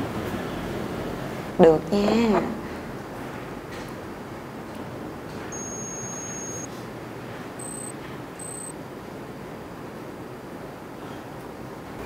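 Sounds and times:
high ticking trill: 0:05.6 - 0:06.7, 0:07.6 - 0:08.7
short high beeps: 0:05.6 - 0:06.7, 0:07.6 - 0:08.7.

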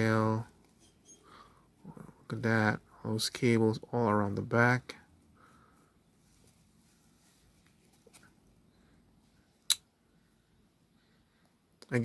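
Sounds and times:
faint plastic and cloth rustles: 0:06.1 - 0:09.4.

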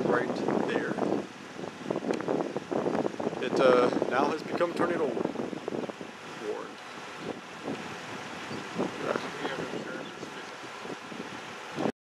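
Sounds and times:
wind buffeting microphone: 0:00.0 - 0:11.9
faint voices: 0:08.9 - 0:10.9.

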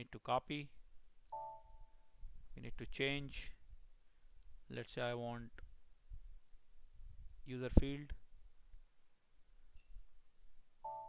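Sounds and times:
high-pitched beep: 0:01.4 - 0:01.8.

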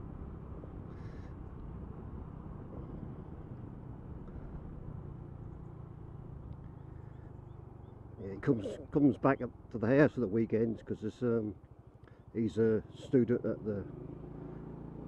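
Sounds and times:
motorcycle engine cruising: 0:00.0 - 0:15.0
wind and road noise: 0:00.0 - 0:15.0.

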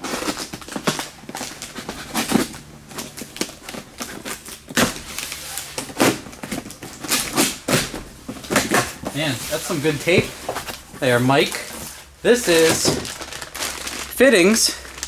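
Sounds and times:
packing tape ripping off cardboard: 0:00.0 - 0:10.8, 0:11.4 - 0:14.2.

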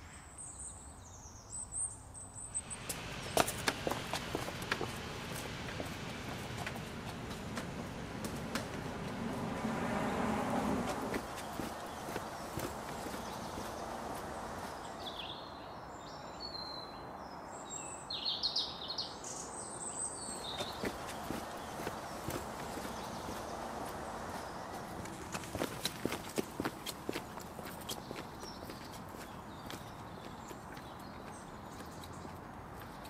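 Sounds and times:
outdoor background hum: 0:02.3 - 0:15.3
footsteps on pavement: 0:02.6 - 0:15.3, 0:20.3 - 0:33.0
bird chirps: 0:10.9 - 0:25.6.

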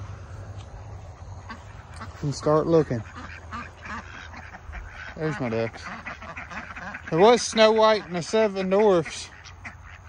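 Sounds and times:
ducks quacking: 0:00.0 - 0:10.0.

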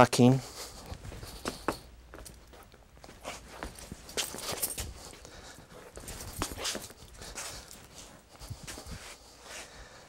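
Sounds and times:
uneven footsteps on hard floor: 0:00.5 - 0:09.8.

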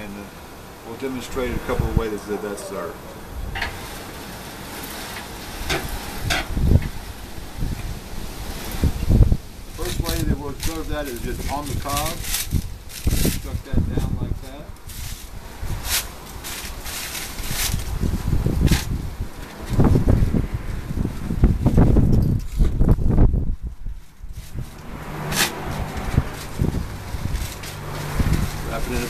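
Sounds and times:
wind rumble on microphone: 0:01.3 - 0:02.4, 0:03.2 - 0:29.0
corn husk rustling and tearing: 0:08.4 - 0:29.0
sharp crackles: 0:09.6 - 0:19.9.

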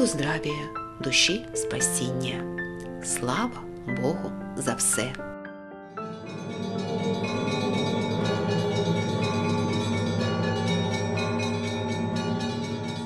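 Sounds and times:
many bells pealing: 0:06.0 - 0:13.0.

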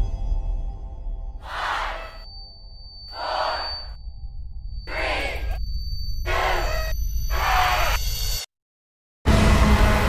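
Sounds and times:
thin high whine: 0:01.4 - 0:08.5
low rumbling drone: 0:09.3 - 0:10.0.

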